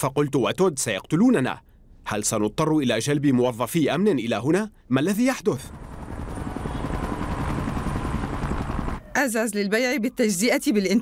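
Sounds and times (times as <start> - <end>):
helicopter rotor flutter: 5.1 - 9.1.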